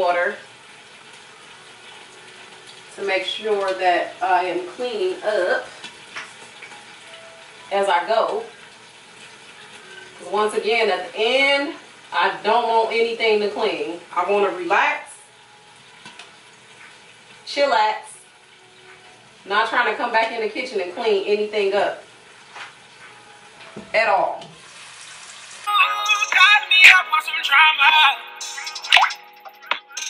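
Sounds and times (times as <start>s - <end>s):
kitchen tap running: 0.0s - 25.7s.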